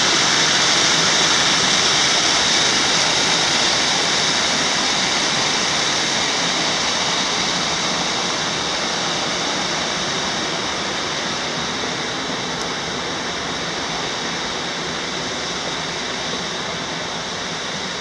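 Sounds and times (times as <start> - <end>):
creek water rushing over rocks: 0.0 - 18.0.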